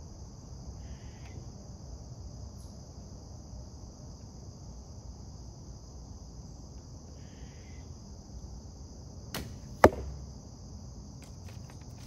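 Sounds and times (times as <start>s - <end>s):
crickets chirping: 0.0s - 12.0s
arrow striking target smack: 9.3s - 10.2s.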